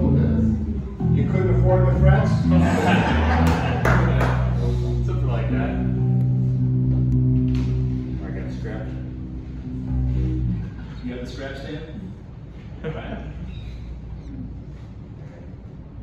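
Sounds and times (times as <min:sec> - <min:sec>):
fretless electric bass notes: 0:00.0 - 0:12.8
people laughing: 0:02.3 - 0:05.0.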